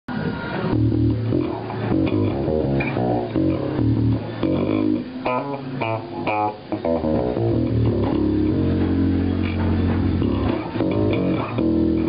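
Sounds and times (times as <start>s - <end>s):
electric bass riff: 0.7s - 12.0s.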